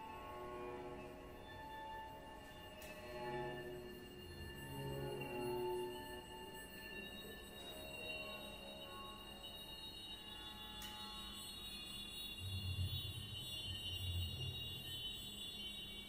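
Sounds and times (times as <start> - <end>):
thin high held tones: 0.0 - 16.0.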